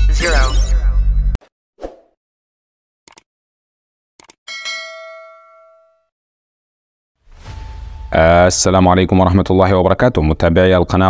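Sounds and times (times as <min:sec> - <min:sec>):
bell ding: 0:04.5 - 0:06.1.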